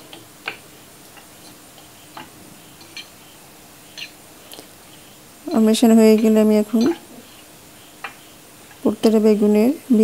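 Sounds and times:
metal spoon stirring in bowl: 0:01.2 - 0:08.9
spoon clinking against bowl: 0:05.5 - 0:07.1.

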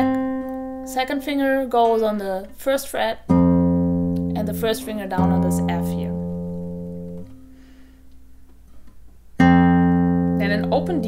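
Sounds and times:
classical guitar chord plucked: 0:00.0 - 0:02.1, 0:03.2 - 0:07.8, 0:09.4 - 0:11.0.

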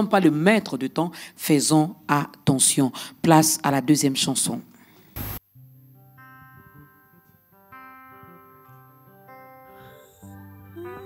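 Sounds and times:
soft sustained worship chords: 0:05.5 - 0:11.0
person singing: 0:09.7 - 0:11.0.

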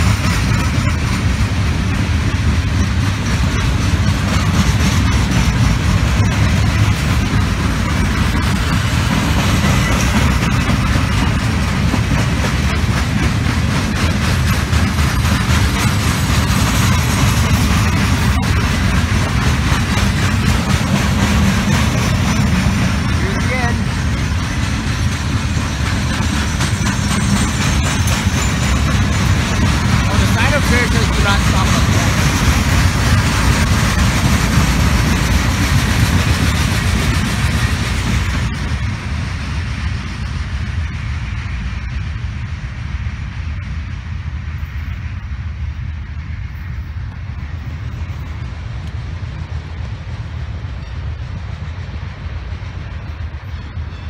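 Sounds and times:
freight train wheels rumbling: 0:00.0 - 0:54.0.

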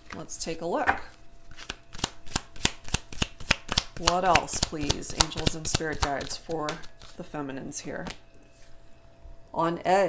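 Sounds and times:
cards being shuffled: 0:00.0 - 0:07.3, 0:08.0 - 0:08.2.

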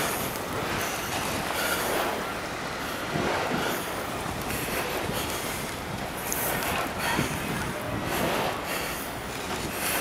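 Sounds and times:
passing traffic: 0:00.0 - 0:10.0
wind on microphone: 0:00.0 - 0:10.0.

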